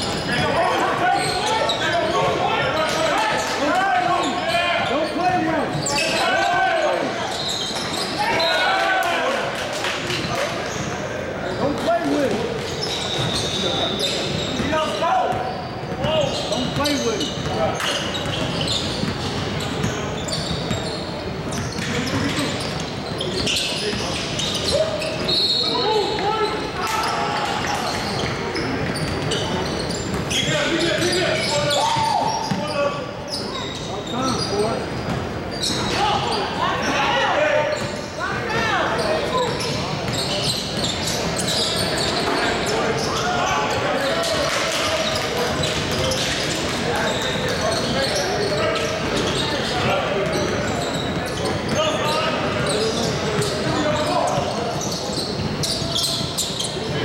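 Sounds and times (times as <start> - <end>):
sneaker squeaks: 0.0 - 8.8, 10.1 - 57.0.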